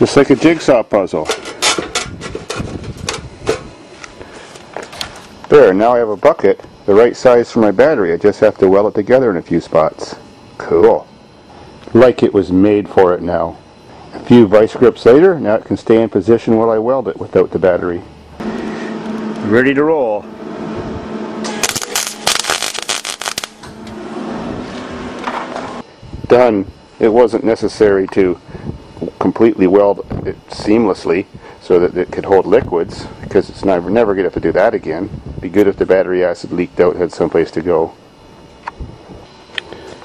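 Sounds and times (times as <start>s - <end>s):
electric welder crackling: 18.4s - 25.8s.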